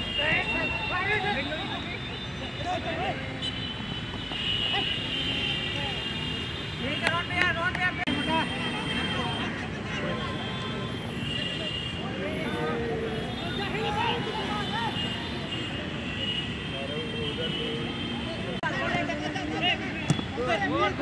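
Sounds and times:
people shouting and calling out: 0:00.0 - 0:03.5, 0:11.5 - 0:15.9, 0:16.9 - 0:21.0.

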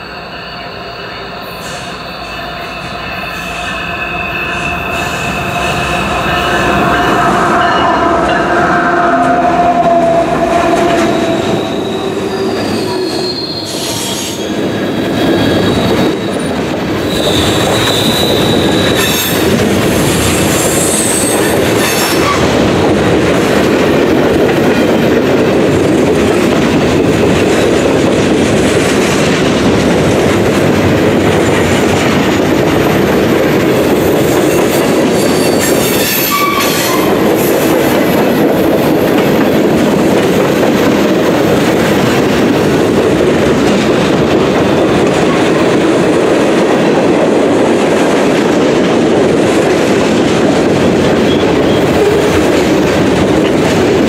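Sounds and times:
steel wheels squealing: 0:00.0 - 0:22.5, 0:34.1 - 0:37.8
diesel locomotives passing: 0:00.0 - 0:54.0.

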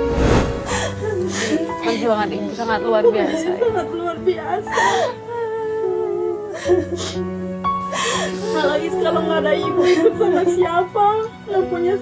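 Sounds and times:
slow sad music: 0:00.0 - 0:12.0.

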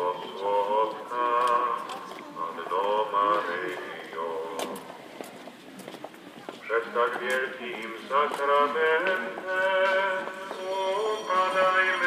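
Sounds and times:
person chanting in long notes: 0:00.0 - 0:03.8.

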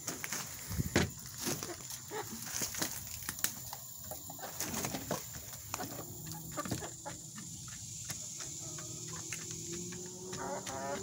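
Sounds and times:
wings fluttering: 0:01.4 - 0:03.8, 0:04.4 - 0:06.0
hens clucking softly: 0:03.6 - 0:11.0.

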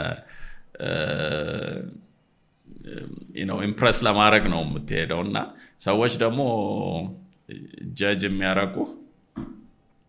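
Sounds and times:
drawn-out vocal sound: 0:00.0 - 0:02.0, 0:02.7 - 0:03.4
man speaking: 0:00.8 - 0:02.0, 0:02.7 - 0:09.1.

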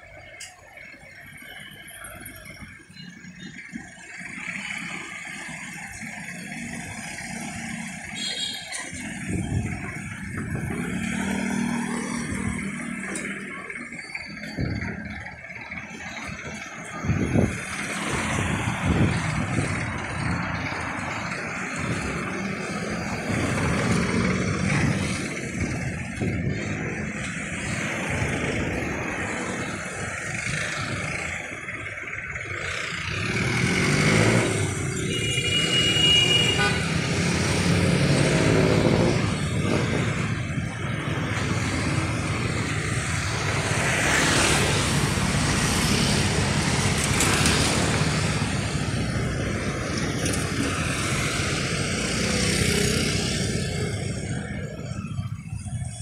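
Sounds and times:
cars and motorcycles passing: 0:00.0 - 0:56.0
vehicle horn toot: 0:08.2 - 0:08.8, 0:35.0 - 0:37.2.

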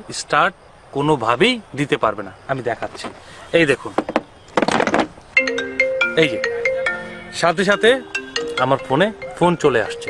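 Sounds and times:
marimba-like phone ringtone: 0:05.4 - 0:10.0.

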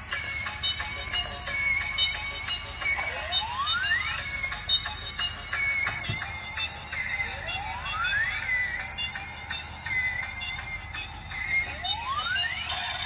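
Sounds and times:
toy train electronic tune: 0:00.0 - 0:13.0.

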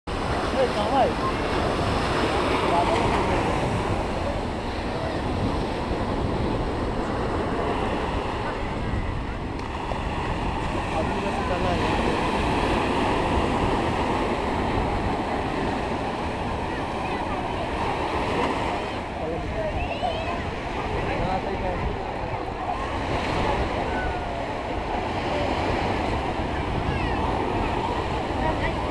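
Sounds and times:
faint crowd voices: 0:00.1 - 0:28.9
surf breaking on beach: 0:00.1 - 0:28.9
wind buffeting microphone: 0:00.1 - 0:28.9.

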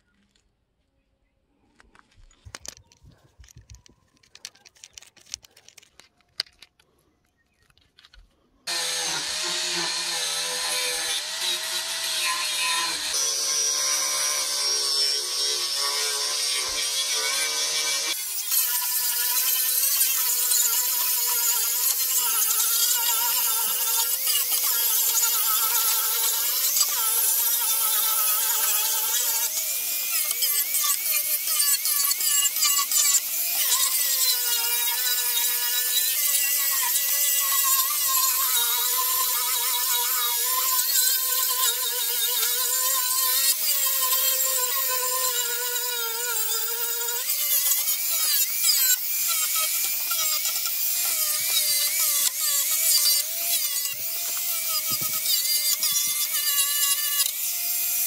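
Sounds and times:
sanding disc rasping on wood: 0:08.7 - 0:13.7
angle grinder motor whine: 0:08.7 - 0:18.6.

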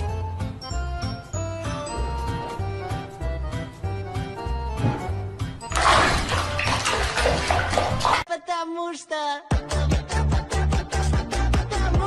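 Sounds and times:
water splashing in a plastic basin: 0:05.6 - 0:08.3.

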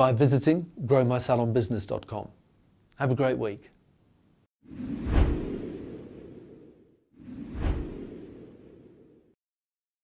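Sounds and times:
whoosh sound effect: 0:04.7 - 0:09.4.

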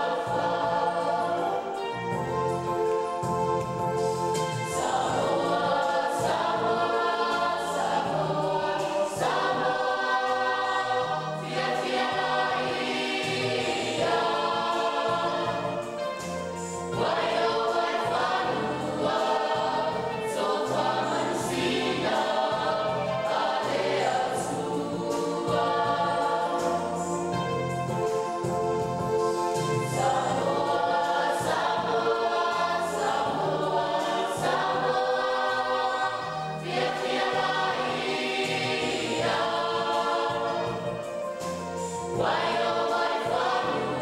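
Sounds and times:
choir singing in harmony: 0:00.0 - 0:44.0.

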